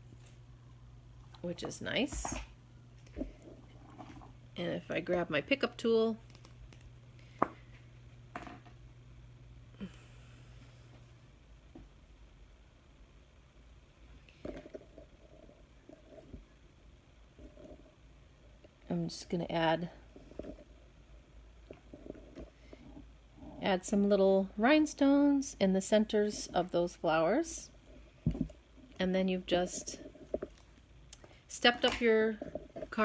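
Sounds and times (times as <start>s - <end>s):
low steady hum: 0.0s - 33.0s.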